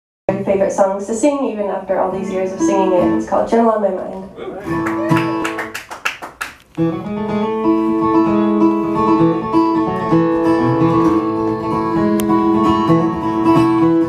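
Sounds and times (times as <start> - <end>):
acoustic guitar playing: 0.3 - 14.0.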